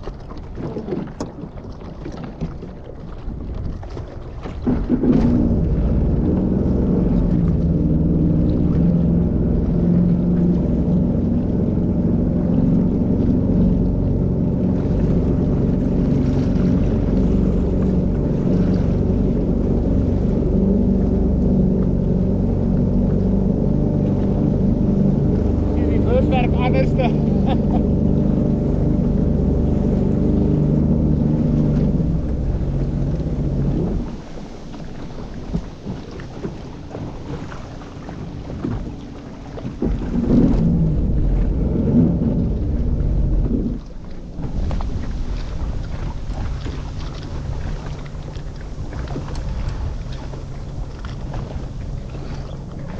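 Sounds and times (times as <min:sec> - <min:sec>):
boat engine running: 0:00.0 - 0:52.9
water splashing: 0:00.0 - 0:52.9.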